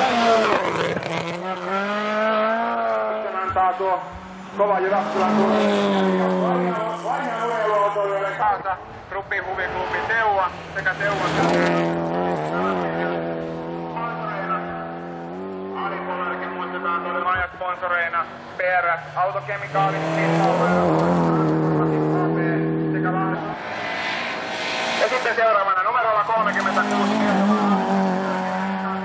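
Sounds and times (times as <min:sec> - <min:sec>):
rally car engine at high revs: 0:00.0 - 0:08.4, 0:09.0 - 0:29.0.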